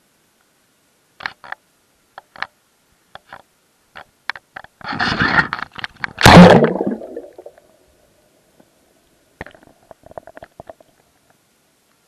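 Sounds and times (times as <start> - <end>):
muffled underwater clicks and knocks: 1.2 - 6.2, 9.4 - 11.4.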